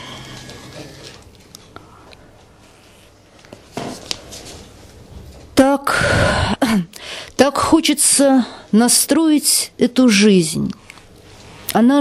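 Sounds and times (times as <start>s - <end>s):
paper rustling: 3.3s - 5.3s.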